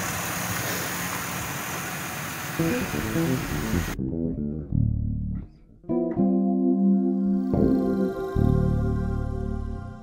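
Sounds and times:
car engine idling: 0:00.0 - 0:04.0.

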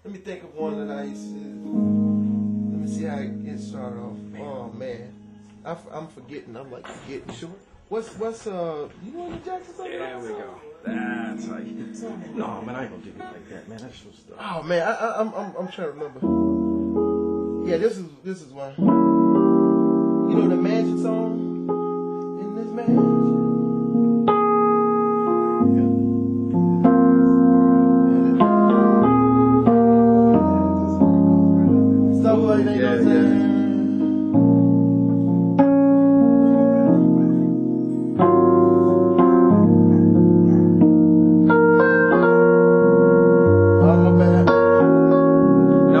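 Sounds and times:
piano chords over bass notes: 0:00.6 - 0:06.1, 0:10.9 - 0:13.6, 0:16.2 - 0:17.9, 0:18.8 - 0:46.0.

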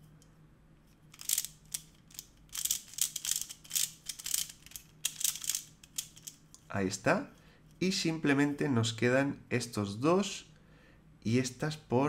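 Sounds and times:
puzzle cube layers clicking: 0:01.1 - 0:06.4.

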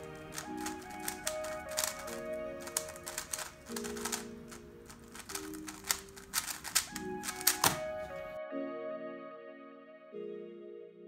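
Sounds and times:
puzzle cube plastic clicks: 0:00.0 - 0:08.2
background music with chords: 0:00.0 - 0:11.0.

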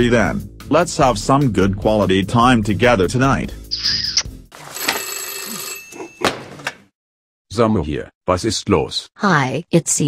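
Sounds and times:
telephone bell ringing: 0:04.6 - 0:06.3.

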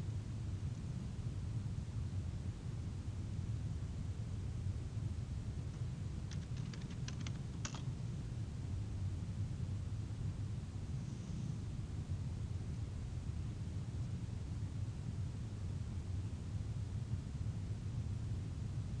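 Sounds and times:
steady low hum: 0:00.0 - 0:19.0
computer keyboard keystrokes: 0:06.3 - 0:07.9.

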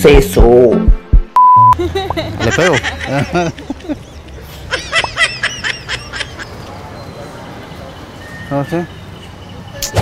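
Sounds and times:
honking laugh-like calls: 0:01.8 - 0:06.7.

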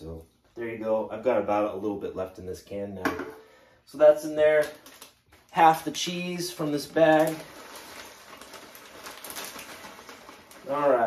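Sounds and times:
plastic bag rustling: 0:04.4 - 0:11.0.

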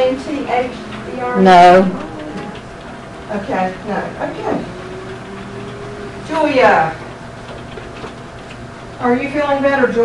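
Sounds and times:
steady hiss and low hum: 0:00.0 - 0:10.0.

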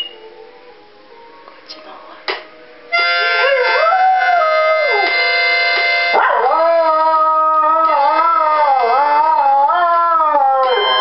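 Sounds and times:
dog howling: 0:06.2 - 0:11.0.

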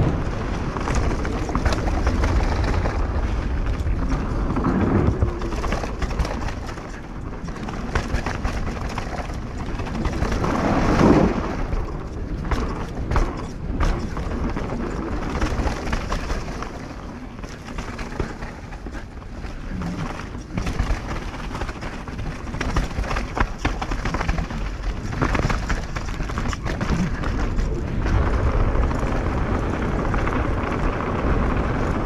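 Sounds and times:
bike rattling and knocking: 0:00.0 - 0:32.0
bike tyre rumble: 0:00.0 - 0:32.0
tyres rolling on wooden bridge: 0:00.0 - 0:32.0
wind on microphone: 0:00.0 - 0:32.0.

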